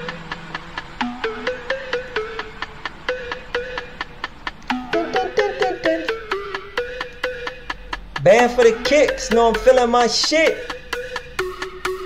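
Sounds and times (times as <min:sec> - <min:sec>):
hip-hop beat: 0:00.0 - 0:12.0.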